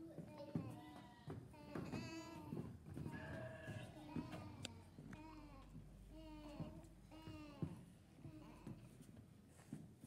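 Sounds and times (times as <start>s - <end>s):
children bleating like sheep: 0.3s - 7.8s.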